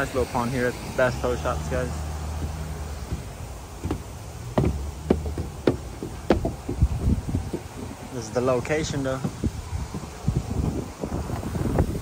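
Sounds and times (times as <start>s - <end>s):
footsteps on wooden boards: 0.8s - 12.0s.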